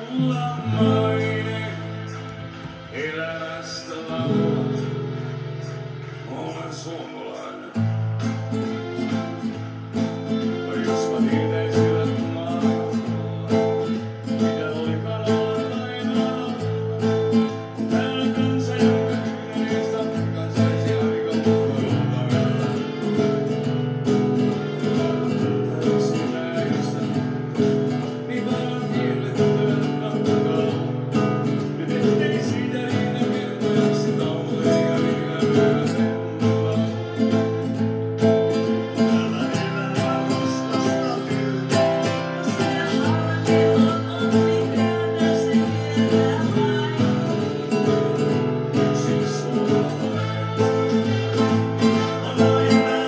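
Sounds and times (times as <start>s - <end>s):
classical guitar chord accompaniment: 0.0s - 53.0s.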